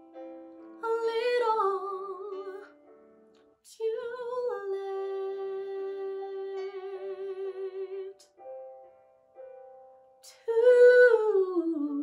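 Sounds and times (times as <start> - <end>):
woman singing with vibrato: 0.8 - 2.7, 3.7 - 8.3, 10.2 - 12.0
faint piano chord: 5.0 - 10.6.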